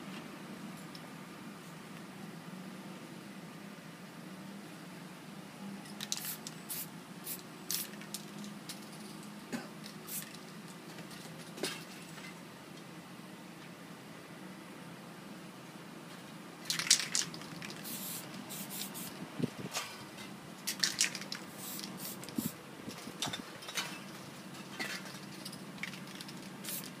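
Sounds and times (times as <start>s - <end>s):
spray paint can spraying: 6.0s - 8.2s, 10.1s - 10.4s, 16.7s - 19.1s, 20.7s - 22.6s, 26.6s - 27.0s.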